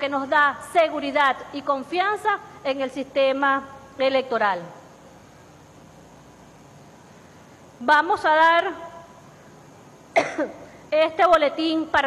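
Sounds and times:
woman coughing: 0:10.1 - 0:10.7.

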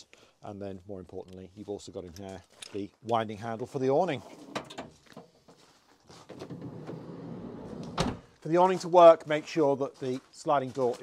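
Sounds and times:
sliding door rolling on rail: 0:06.5 - 0:08.1
door shutting with thud: 0:07.8 - 0:08.3.

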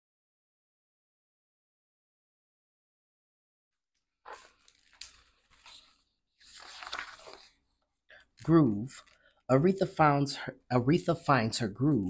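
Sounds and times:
book pages turning and rustling: 0:04.2 - 0:09.4.

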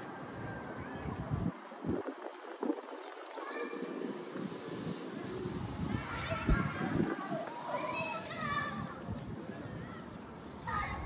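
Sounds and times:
faint distant voices: 0:00.0 - 0:11.0
low unsteady city rumble: 0:00.0 - 0:11.0.

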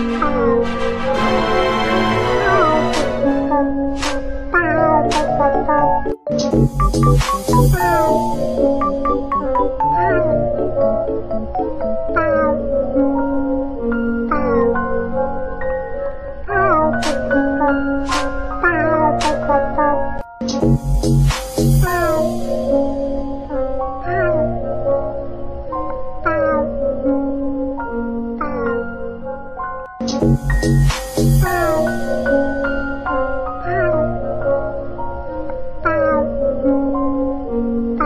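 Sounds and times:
background music: 0:00.0 - 0:38.0.

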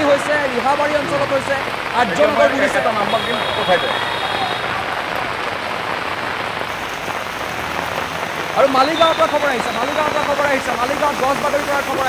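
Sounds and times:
heavy rain on hard surfaces: 0:00.0 - 0:12.0.

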